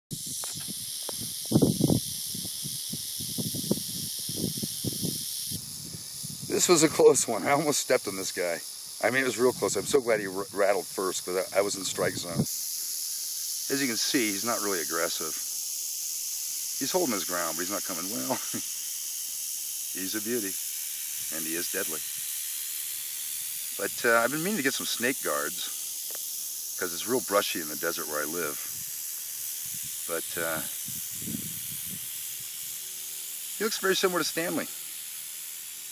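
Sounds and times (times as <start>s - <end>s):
rattlesnake rattling: 0.1s - 35.9s.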